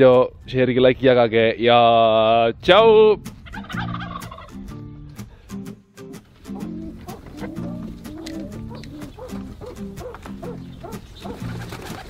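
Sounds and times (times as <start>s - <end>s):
birds calling in low notes: 6.5s - 12.0s.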